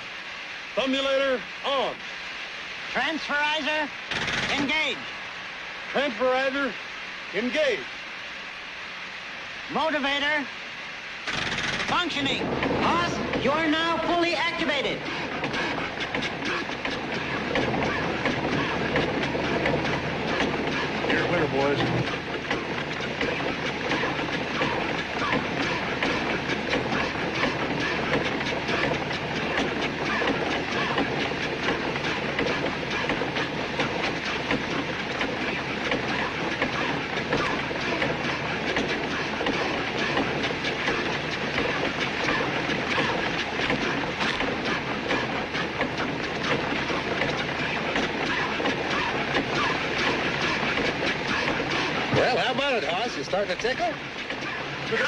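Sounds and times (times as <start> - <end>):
rapid mechanical clattering: 4.1 - 4.9, 11.2 - 55.0.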